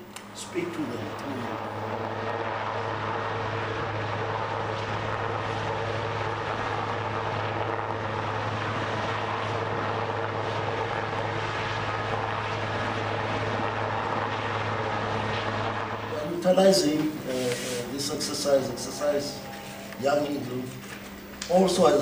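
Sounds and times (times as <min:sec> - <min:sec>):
aircraft engines droning: 0:00.0 - 0:22.0.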